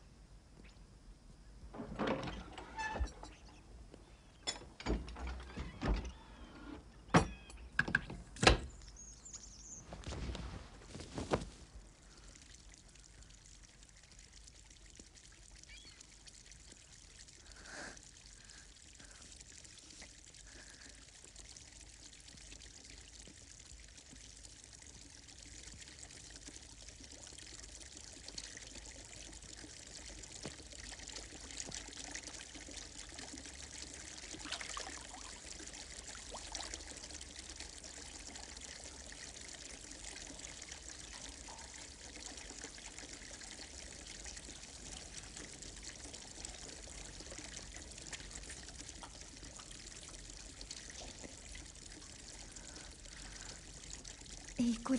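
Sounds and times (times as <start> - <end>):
water trickling over rock: 8.7 - 54.9.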